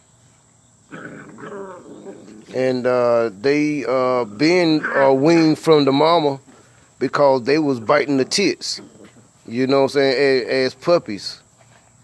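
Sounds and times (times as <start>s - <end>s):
puppies play-wrestling: 0.9s - 2.6s, 8.2s - 9.5s
puppy making wavering noises: 0.9s - 2.6s, 4.6s - 5.4s.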